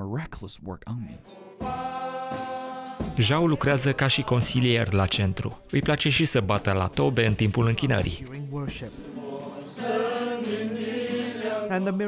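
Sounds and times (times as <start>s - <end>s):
men's choir singing: 1.2s - 5.1s, 8.9s - 12.0s.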